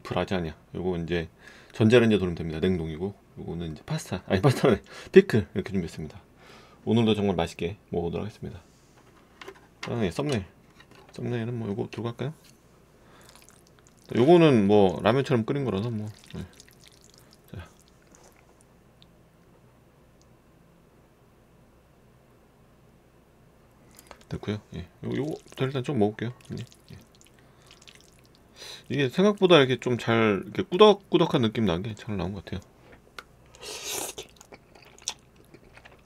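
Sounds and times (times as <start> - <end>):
slurping noodles: 13.2 - 14.1, 33.6 - 35.2
chewing with wet mouth clicks: 13.2 - 14.2, 15.8 - 19.2, 23.9 - 24.4, 25.3 - 25.7, 26.3 - 28.4, 33.5 - 36.0
chopsticks stirring sticky pasta: 15.7 - 18.4.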